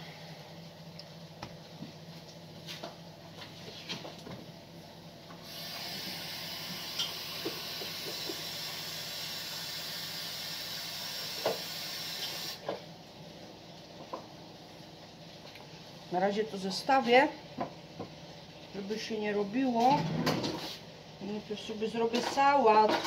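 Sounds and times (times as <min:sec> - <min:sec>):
kitchen tap running: 0:05.4 - 0:12.6.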